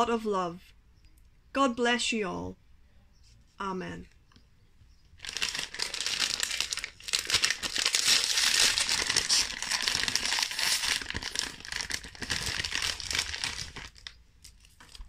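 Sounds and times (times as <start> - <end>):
plastic wrapper crinkling: 5.2 - 15.0.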